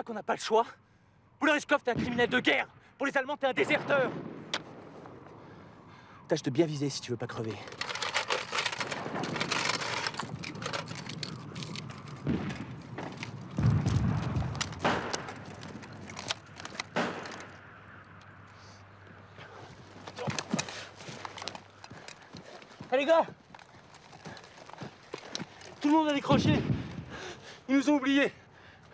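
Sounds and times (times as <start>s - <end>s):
machine-gun bursts: 7.7s - 12.6s
single gunshots: 12.2s - 15.4s, 16.9s - 17.6s.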